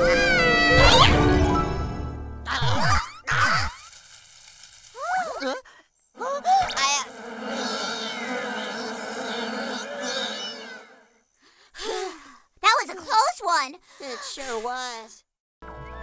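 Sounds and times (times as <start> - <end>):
cartoon bees buzzing: 6.6 - 11.2.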